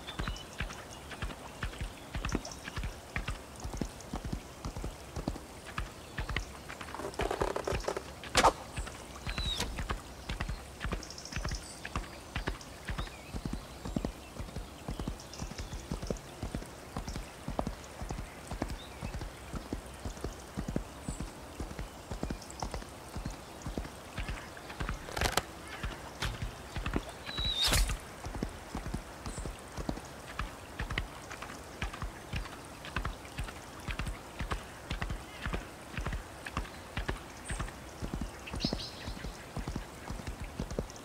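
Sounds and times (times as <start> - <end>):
horse hooves clip-clopping: 0.0 - 41.0
sharp crack: 27.6 - 28.0.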